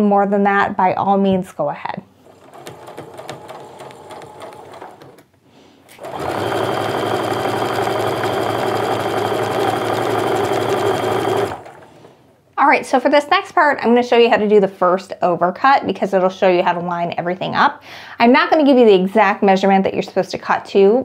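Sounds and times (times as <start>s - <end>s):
sewing machine motor running: 2.2s - 5.2s, 5.9s - 12.1s.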